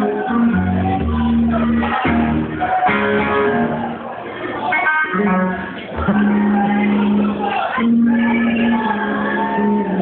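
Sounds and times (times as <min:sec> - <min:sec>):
bass guitar playing: 0:00.0 - 0:04.2, 0:04.8 - 0:10.0
amplified electric guitar: 0:00.0 - 0:10.0.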